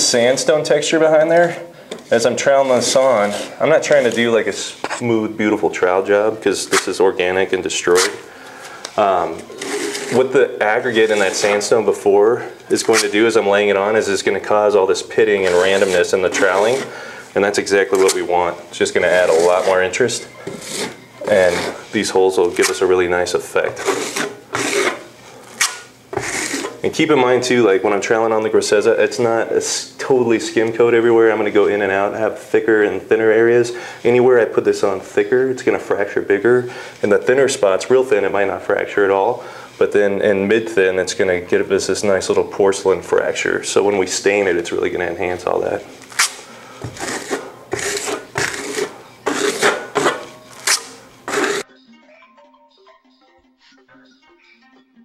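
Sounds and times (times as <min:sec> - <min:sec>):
trowel scraping plaster: 0:02.5 - 0:05.0, 0:09.4 - 0:11.8, 0:15.1 - 0:17.0, 0:19.0 - 0:22.8, 0:23.6 - 0:26.8, 0:46.2 - 0:51.7
faint background music: 0:08.9 - 0:55.0.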